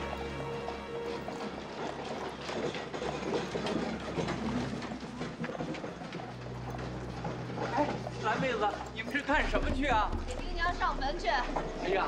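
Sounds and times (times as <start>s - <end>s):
hooves and cart wheels clattering: 0.0s - 12.0s.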